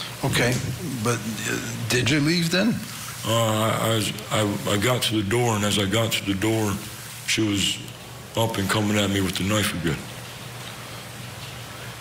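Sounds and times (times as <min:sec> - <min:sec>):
faint hiss: 0:00.0 - 0:12.0
steady low hum: 0:00.0 - 0:12.0.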